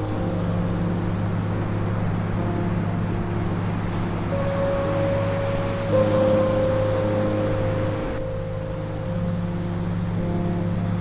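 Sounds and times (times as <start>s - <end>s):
ocean waves breaking: 0.0s - 11.0s
slow ambient drone music: 0.0s - 11.0s.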